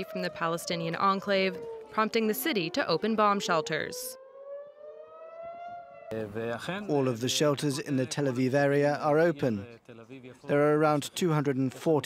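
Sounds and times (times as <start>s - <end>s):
air-raid siren wailing: 0.0s - 7.0s
man speaking: 6.1s - 12.0s.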